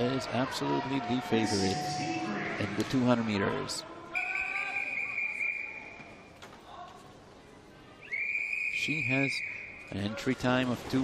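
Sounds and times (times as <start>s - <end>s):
whistle long blast: 4.2s - 5.9s, 8.0s - 9.8s.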